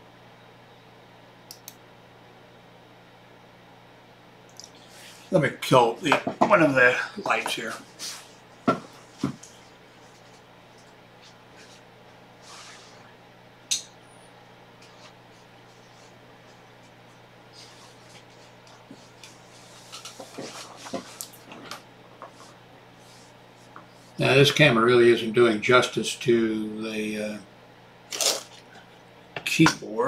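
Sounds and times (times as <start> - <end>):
faint steady hum: 0.0 - 30.0
knocks on a desk: 6.1 - 6.6, 8.7 - 9.4.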